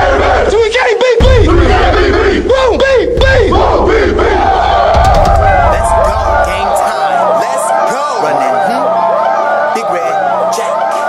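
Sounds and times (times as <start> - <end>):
hip-hop beat with deep bass: 0.0 - 11.0
players shouting in unison: 0.0 - 11.0.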